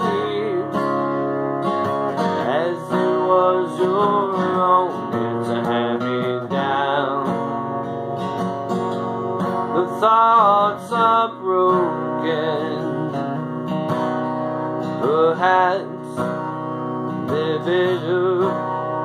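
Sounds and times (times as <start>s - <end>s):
man singing: 0.0s - 1.2s, 2.1s - 7.9s, 9.6s - 13.6s, 14.7s - 19.0s
acoustic guitar strumming: 0.0s - 19.0s.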